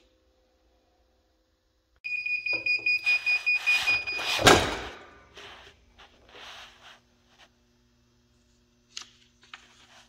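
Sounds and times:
loud clunk of press opening: 4.3 - 5.1.

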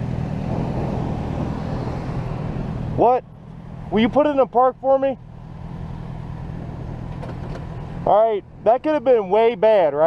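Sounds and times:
road noise: 0.0 - 10.0
vehicle engine hum: 0.0 - 10.0.

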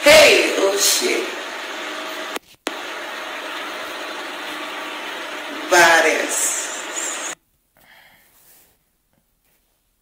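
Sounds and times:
steady background hiss: 0.0 - 7.7.

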